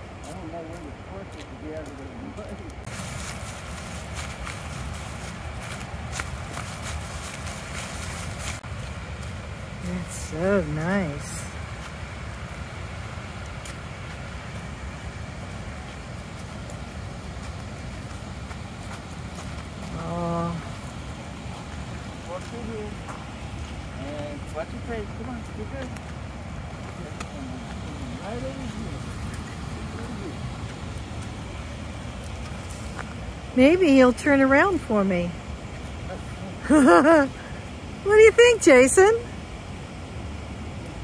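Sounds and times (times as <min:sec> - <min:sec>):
faint voices: 0:26.8 - 0:30.8.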